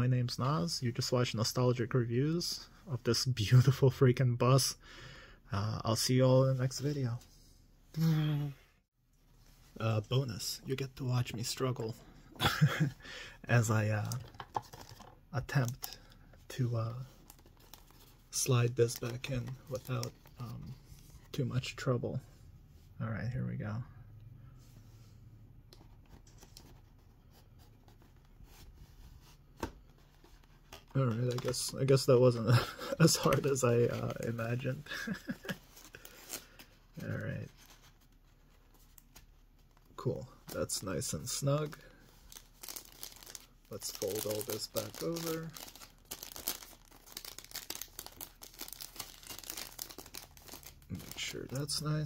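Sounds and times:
plastic bag crinkling: 42.3 - 51.6.

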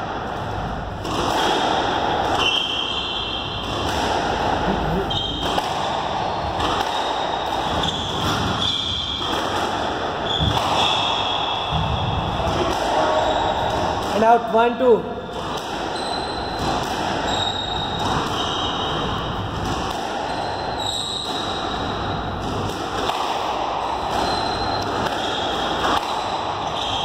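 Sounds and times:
shoes squeaking on floor: 4.7 - 5.5, 7.6 - 9.2, 10.2 - 11.3, 16.0 - 16.6, 17.2 - 19.0, 20.3 - 21.7, 24.1 - 27.0.

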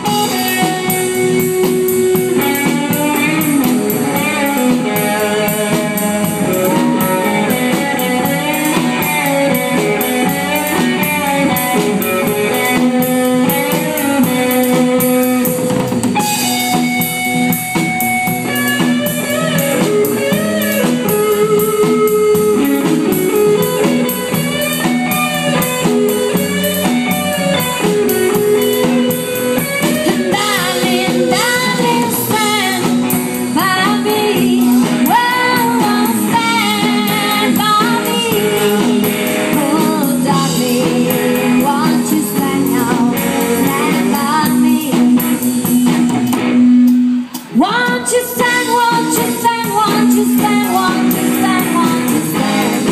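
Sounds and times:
bending electric guitar lead: 0.0 - 52.9
rock band playing: 0.0 - 52.9.

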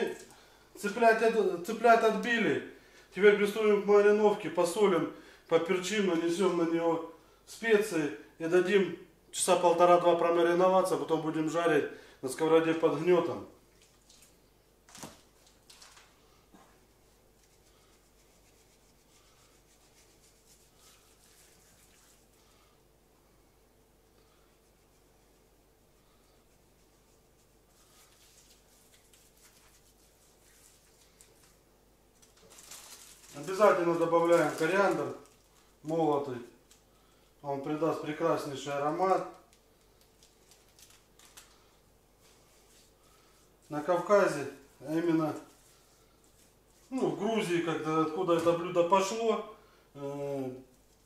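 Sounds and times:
soft ticks and rustles: 26.8 - 33.5, 39.2 - 41.6.

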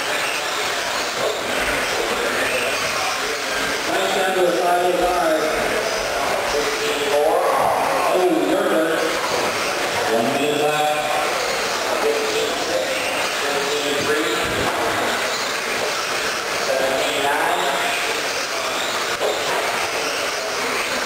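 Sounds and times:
electric toy trucks racing: 0.0 - 21.0
indistinct talking echoing: 0.0 - 21.0.

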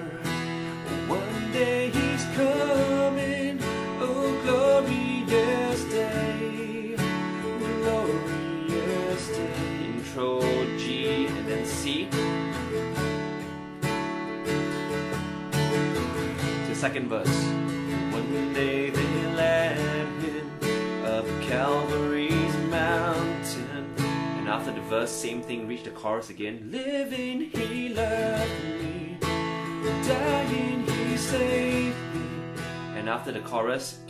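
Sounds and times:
man singing: 0.0 - 12.4, 16.5 - 34.0
acoustic guitar strumming: 0.0 - 34.0.

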